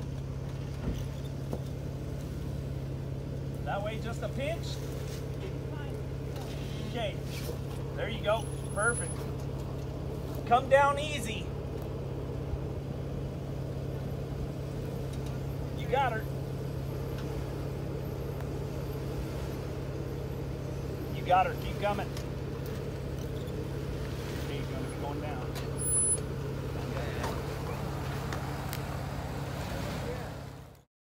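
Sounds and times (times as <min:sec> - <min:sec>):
car engine running at low revs: 0:00.0 - 0:30.9.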